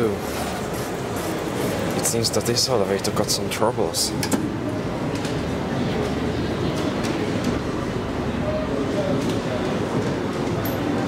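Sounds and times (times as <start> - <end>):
elevator car rumbling and rattling: 0.0 - 11.0.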